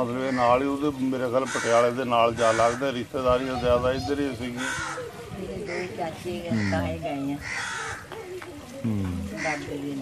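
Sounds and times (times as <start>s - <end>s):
crow cawing: 1.4s - 3.0s, 4.6s - 8.3s, 9.2s - 9.8s
man speaking: 8.8s - 9.3s.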